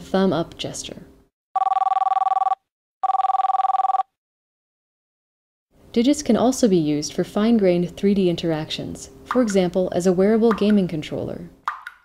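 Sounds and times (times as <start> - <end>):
trilling two-tone telephone ring: 1.6 - 4.1.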